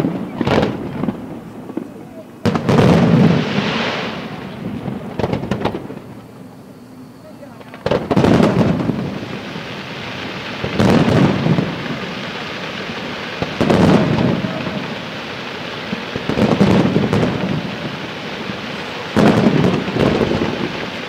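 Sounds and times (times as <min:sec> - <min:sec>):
fireworks booming: 0:00.0 - 0:21.0.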